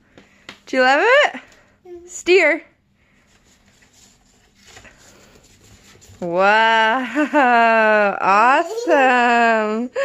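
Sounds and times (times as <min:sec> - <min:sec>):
cardboard rustling and handling: 0:03.3 - 0:06.3.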